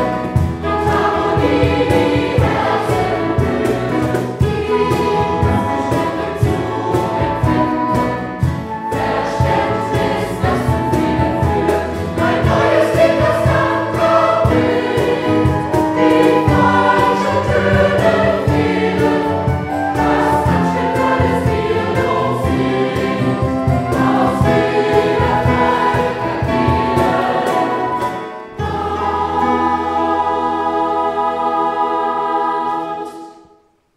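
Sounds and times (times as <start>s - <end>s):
steady beat: 0.0s - 29.2s
guitar: 0.0s - 33.6s
mixed choir singing: 0.0s - 33.6s
flutes: 7.5s - 14.2s.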